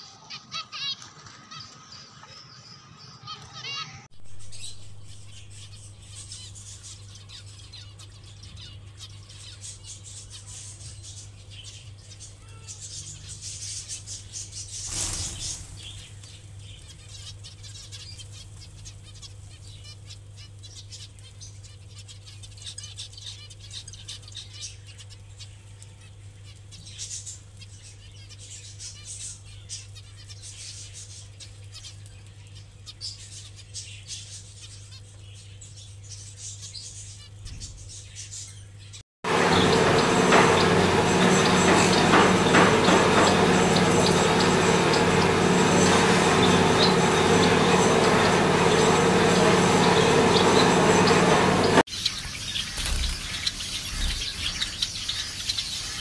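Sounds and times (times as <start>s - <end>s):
finches chirping and fluttering: 0.2s - 56.0s
steady low hum: 39.3s - 51.9s.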